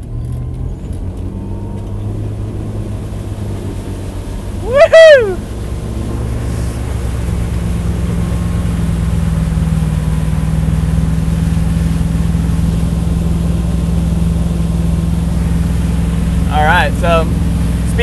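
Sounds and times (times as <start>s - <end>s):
boat engine humming: 0.0s - 18.0s.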